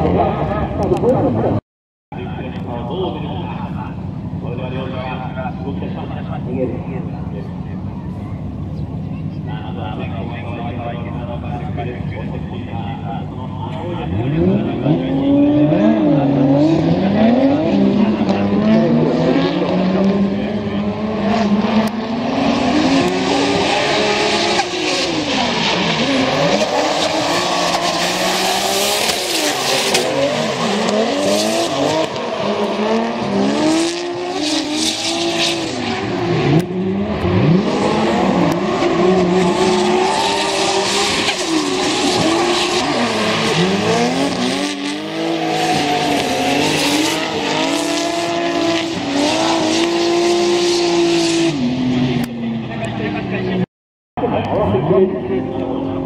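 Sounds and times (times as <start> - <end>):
car engines revving: 0.0 - 1.6, 2.2 - 56.0.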